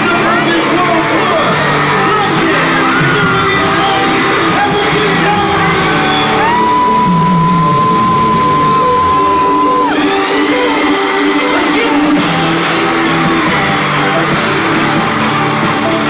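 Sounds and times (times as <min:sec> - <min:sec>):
amplified pop music with singing: 0:00.0 - 0:16.0
fans whooping and yelling: 0:00.0 - 0:16.0.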